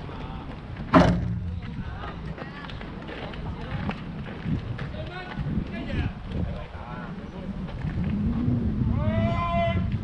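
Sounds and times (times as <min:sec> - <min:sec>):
sharp knock: 0:00.9 - 0:01.6.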